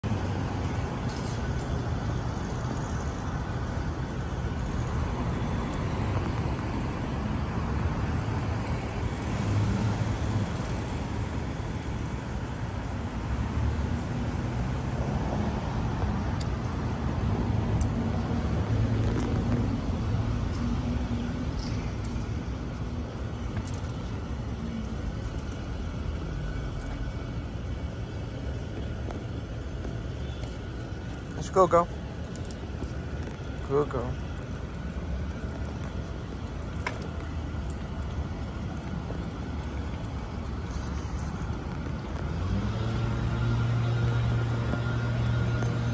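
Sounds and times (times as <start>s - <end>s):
street traffic rumble: 0.0s - 45.9s.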